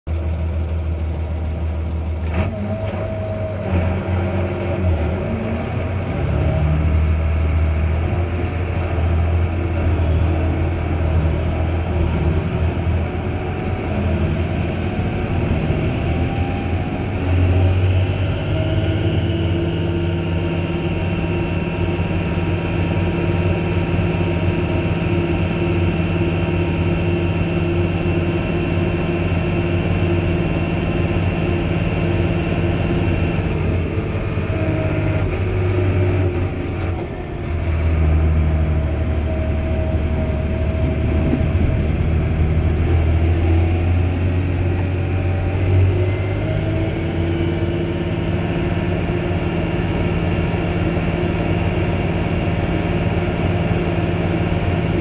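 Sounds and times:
tractor engine running: 0:00.0 - 0:55.0.

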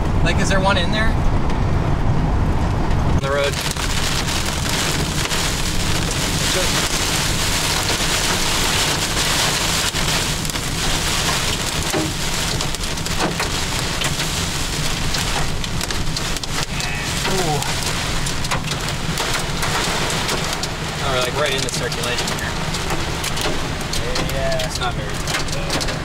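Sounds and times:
heavy rain on car windshield: 0:00.0 - 0:26.0.

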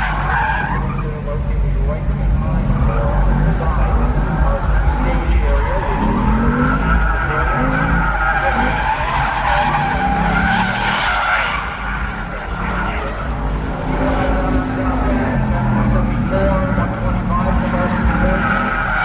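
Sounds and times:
car engine revving: 0:00.0 - 0:19.0
tyres squealing: 0:00.0 - 0:19.0.

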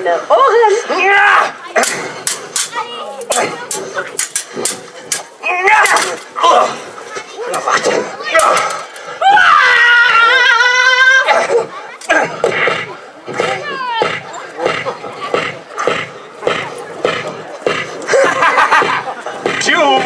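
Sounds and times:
people shouting: 0:05.4 - 0:14.4
sharp knocks: 0:12.3 - 0:20.0.

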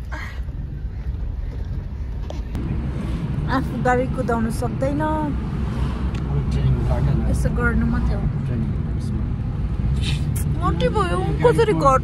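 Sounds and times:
car rumble from inside cabin: 0:00.0 - 0:12.0.

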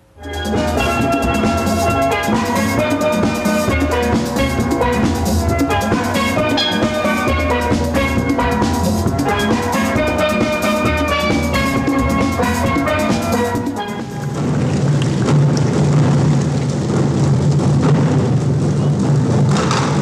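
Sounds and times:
steel band playing: 0:00.0 - 0:14.8
deep bass pan notes: 0:00.0 - 0:16.4.

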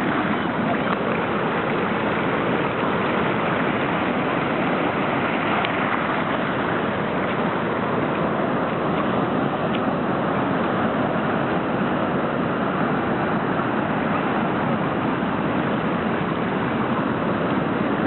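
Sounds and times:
surf breaking on beach: 0:00.0 - 0:18.0.

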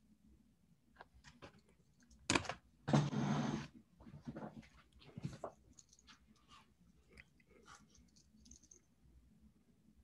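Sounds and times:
faint small clicks and rustles: 0:04.2 - 0:09.1.

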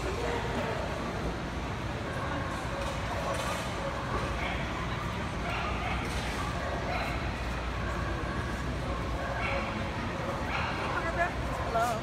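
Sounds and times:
chatter in a large hall: 0:00.0 - 0:12.0
dog barking: 0:05.4 - 0:07.3, 0:09.2 - 0:09.8, 0:10.4 - 0:11.1.

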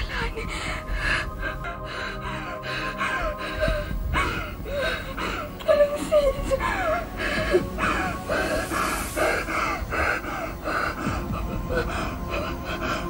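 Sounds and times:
woman sobbing: 0:00.0 - 0:13.0.

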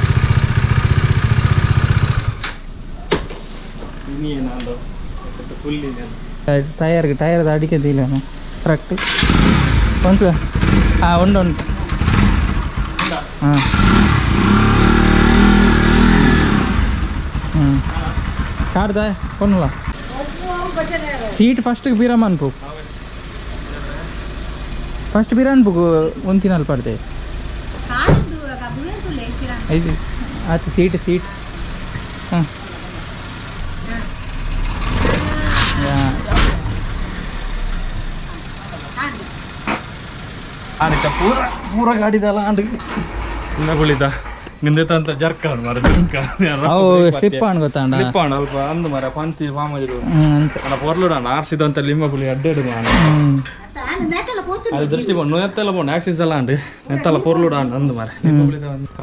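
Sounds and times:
motorcycle engine revving: 0:00.0 - 0:02.6, 0:07.9 - 0:44.5, 0:47.9 - 0:53.6.

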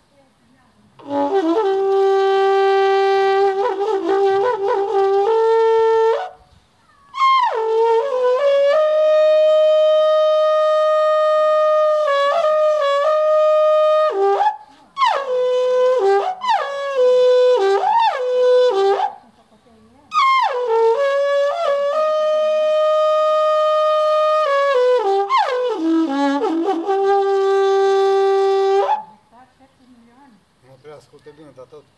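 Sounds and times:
long metal horn playing: 0:01.0 - 0:06.4, 0:07.1 - 0:19.2, 0:20.1 - 0:29.2.

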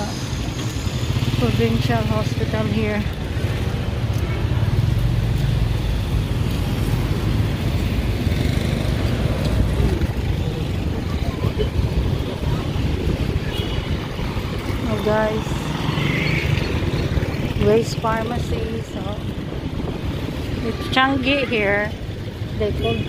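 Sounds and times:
motorcycle engine rumbling: 0:00.0 - 0:23.0.

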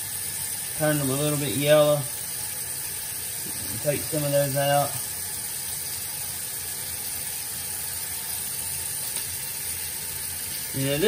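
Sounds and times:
faucet running into sink: 0:00.0 - 0:11.0.

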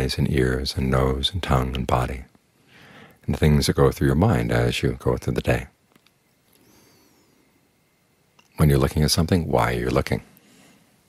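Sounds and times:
faint high whistle-like glide: 0:06.6 - 0:07.6.

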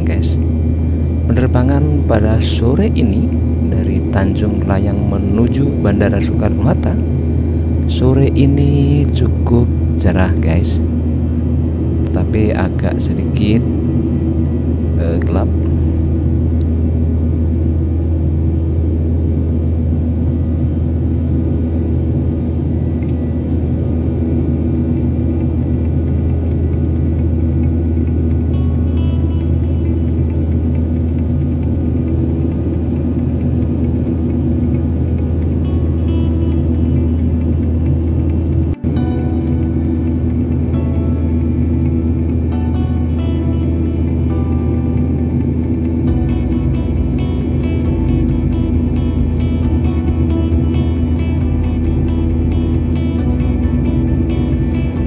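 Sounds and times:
aircraft engine drone in cabin: 0:00.0 - 0:55.0
background music: 0:27.7 - 0:34.3, 0:34.9 - 0:55.0.

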